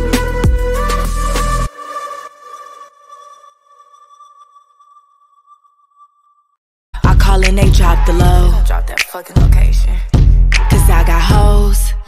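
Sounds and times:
song playing loudly: 0:00.0 - 0:03.0, 0:07.0 - 0:09.5, 0:10.5 - 0:12.0.

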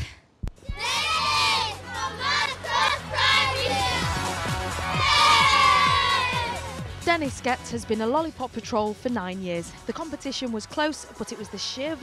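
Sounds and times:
children shouting and cheering: 0:00.6 - 0:06.9.

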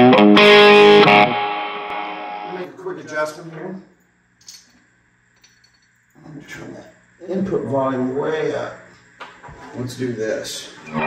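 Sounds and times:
guitar amplifier hum: 0:00.0 - 0:03.8, 0:06.3 - 0:11.0.

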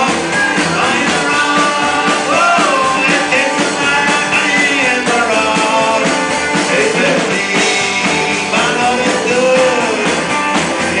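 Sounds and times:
drum kit: 0:00.0 - 0:11.0
electric guitar: 0:00.0 - 0:11.0
man singing: 0:00.0 - 0:11.0.

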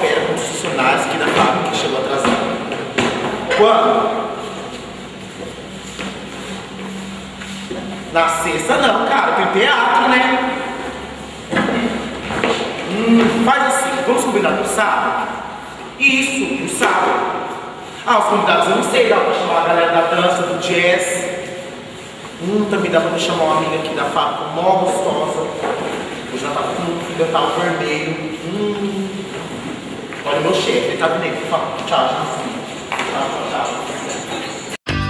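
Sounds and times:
person talking: 0:00.0 - 0:02.8, 0:03.4 - 0:04.9, 0:07.7 - 0:34.7.

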